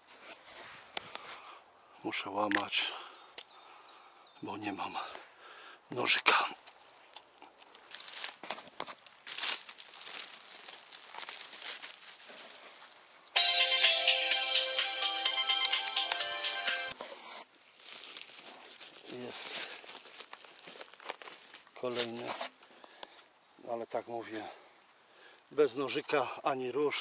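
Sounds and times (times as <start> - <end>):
twigs and forest litter rustling: 0.0 - 13.4, 15.8 - 27.0
loud music: 13.4 - 17.0.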